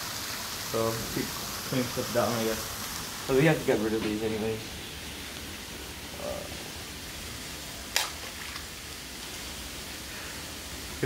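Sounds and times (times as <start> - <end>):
outdoor hiss: 0.0 - 11.0
egg cracking on impact: 7.9 - 8.7.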